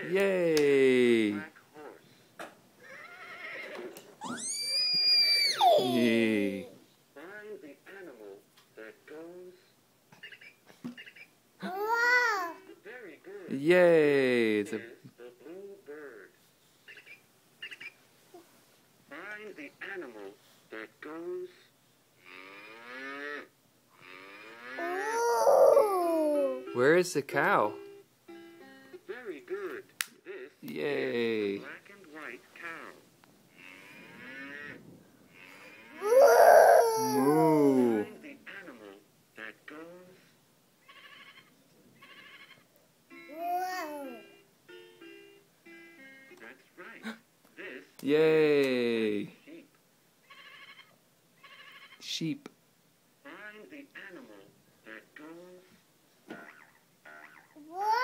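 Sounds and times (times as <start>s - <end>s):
cow moo from toy speaker: 22.3s - 24.8s, 33.6s - 34.7s
toy speaker sheep bleat: 40.8s - 42.6s, 50.2s - 52.0s.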